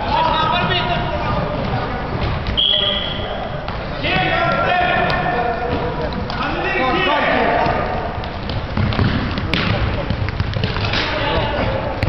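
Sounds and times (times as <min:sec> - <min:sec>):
players calling and shouting: 0:00.0 - 0:12.0
ball bouncing on hard court: 0:00.5 - 0:02.9, 0:03.6 - 0:06.4, 0:07.4 - 0:12.0
running feet on hard court: 0:03.5 - 0:12.0.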